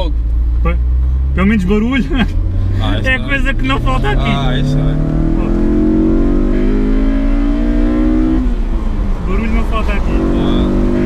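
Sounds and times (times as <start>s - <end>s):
car engine accelerating hard: 0.0s - 11.0s.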